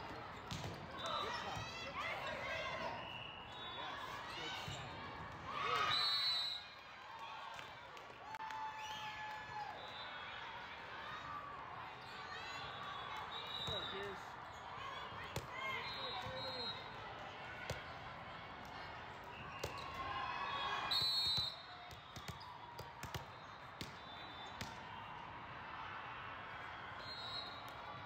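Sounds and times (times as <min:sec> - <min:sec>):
volleyballs hit and bounced: 0:00.0 - 0:01.9, 0:19.6 - 0:20.1, 0:21.8 - 0:24.8.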